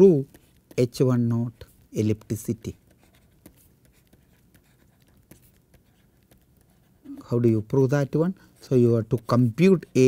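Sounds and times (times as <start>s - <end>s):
stylus scratching on tablet: 0.0s - 10.0s.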